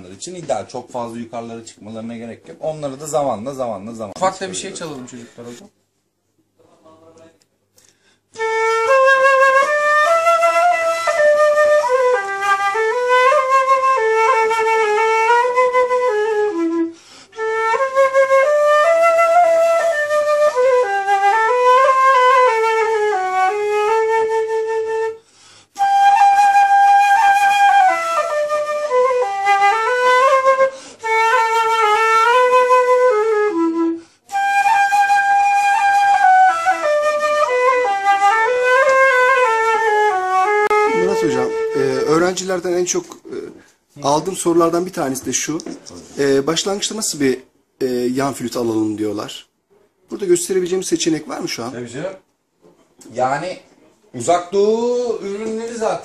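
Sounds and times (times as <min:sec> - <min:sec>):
solo flute melody: 0:08.3 - 0:43.2.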